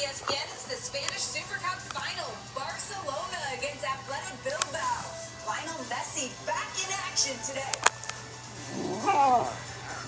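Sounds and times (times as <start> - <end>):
puppy whining call: 8.6 - 10.0.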